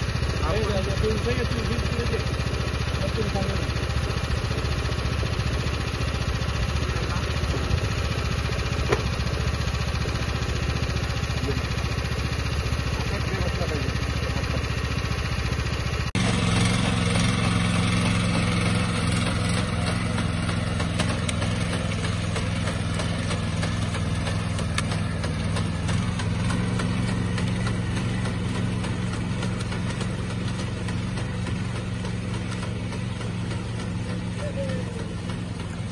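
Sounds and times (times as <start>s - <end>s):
small engine idling: 0.0s - 35.9s.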